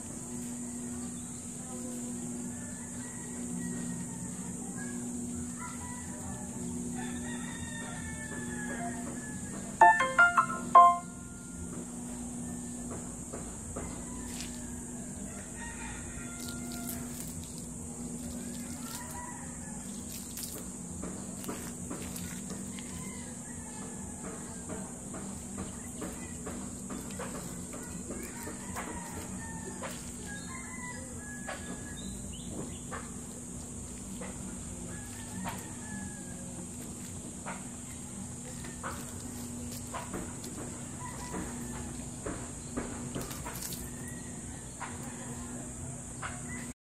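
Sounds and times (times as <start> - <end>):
rooster crowing: 2.4 - 11.7, 13.8 - 17.6, 18.3 - 20.5, 22.4 - 25.0, 27.0 - 32.2, 34.1 - 42.5, 43.2 - 46.8.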